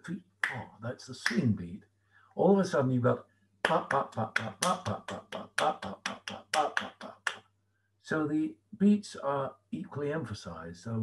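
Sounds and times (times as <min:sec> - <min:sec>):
man beatboxing percussive syllables: 0:03.7 - 0:07.4.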